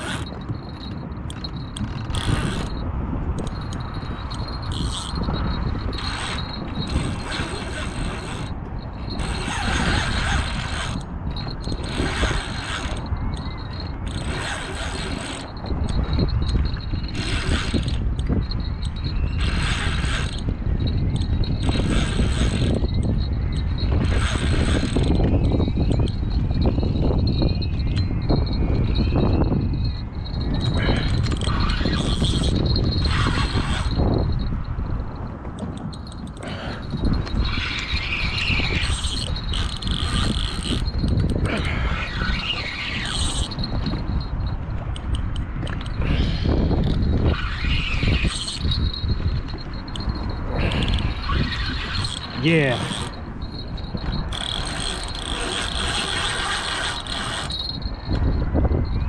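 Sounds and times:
fishing reel drag buzzing: 0.0 - 34.6, 35.6 - 59.0
reel gears clicking: 0.0 - 59.0
wind rumble on microphone: 0.0 - 59.0.

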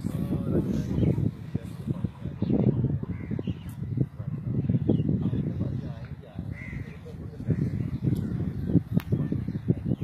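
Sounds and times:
bird calling: 2.1 - 10.0.

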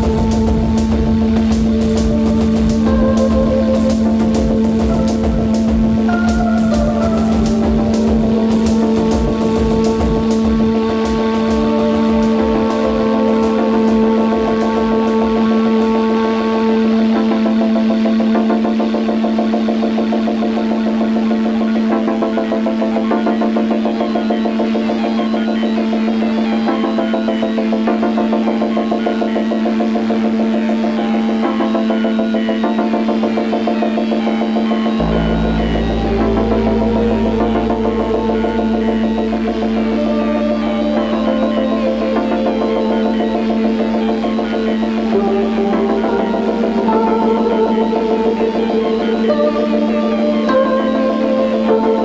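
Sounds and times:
hissing percussion pattern: 0.0 - 16.4
steady low beat: 0.0 - 52.0
synthesizer drone and chords: 0.0 - 52.0.

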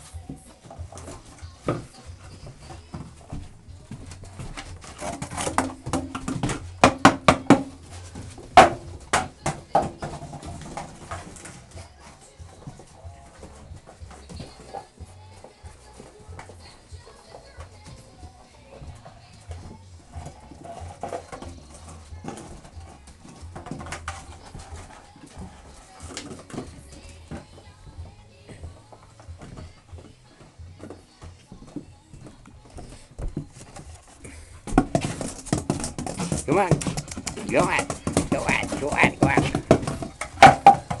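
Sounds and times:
faint music: 0.0 - 41.0
puppies chewing plastic bottle: 0.0 - 41.0
plastic bottle knocking on floor: 4.4 - 11.5, 34.7 - 41.0.

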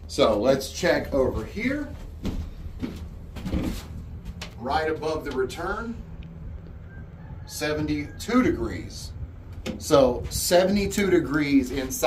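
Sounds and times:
air conditioner hum: 0.0 - 6.9, 7.5 - 12.0.

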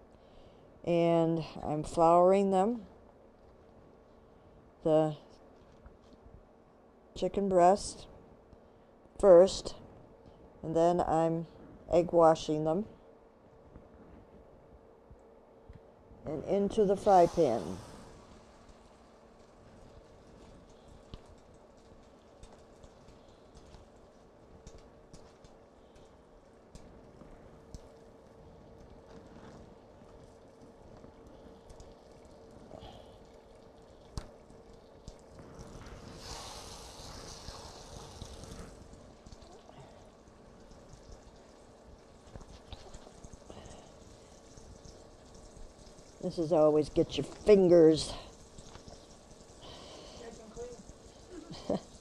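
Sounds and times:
faint steady hum: 0.0 - 52.0
chicken sizzling in butter: 16.9 - 24.0, 35.4 - 40.0.

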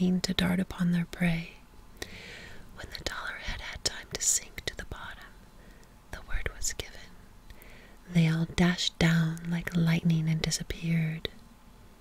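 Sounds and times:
woman whispering: 2.8 - 5.3, 6.1 - 7.1, 8.1 - 11.4.

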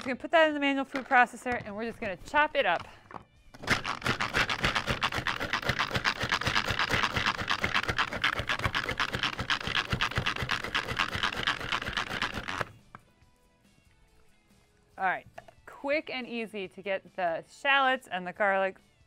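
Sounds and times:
pull-cord chopper chopping: 3.6 - 12.7.

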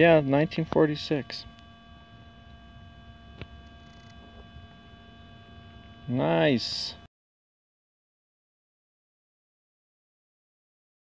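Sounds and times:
faint electrical hum: 0.0 - 7.1.

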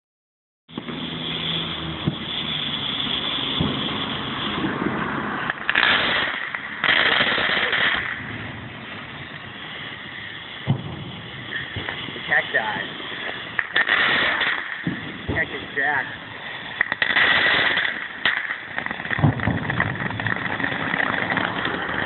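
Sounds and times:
firework fountain hissing and crackling: 0.7 - 22.0.

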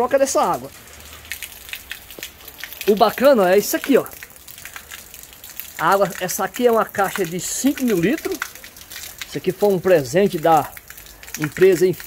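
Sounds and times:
rain falling: 0.0 - 12.0
rainwater pouring and splashing: 0.0 - 12.0.

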